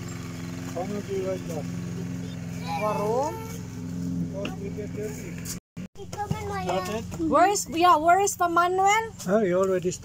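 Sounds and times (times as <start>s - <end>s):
child vocalizing: 2.6s - 3.6s.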